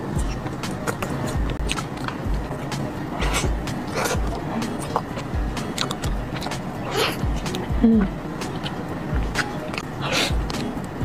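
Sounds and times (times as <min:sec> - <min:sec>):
soft low chewing thuds: 0:00.0 - 0:11.0
wet mouth clicks and smacks: 0:03.2 - 0:07.7.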